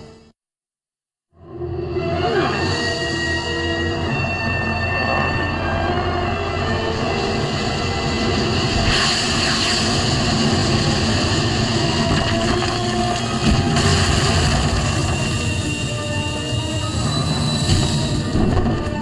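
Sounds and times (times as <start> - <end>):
dramatic orchestral score: 1.5 - 19.0
rushing noise: 3.1 - 19.0.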